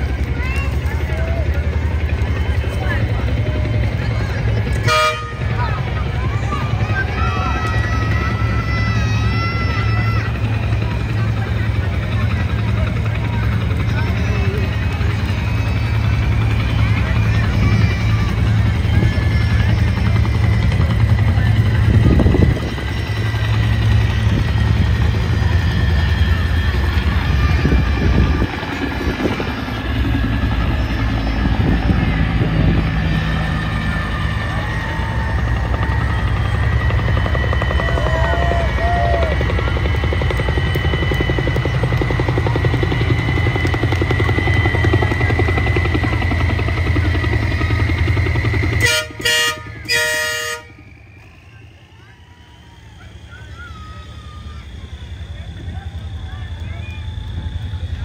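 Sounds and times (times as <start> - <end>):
truck engine rumbling: 0.0 - 58.0
truck horn blasts: 4.8 - 5.6, 48.8 - 50.8.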